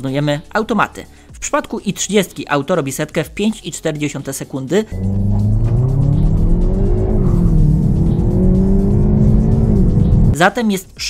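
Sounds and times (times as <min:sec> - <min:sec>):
car engine accelerating: 0:04.9 - 0:10.4.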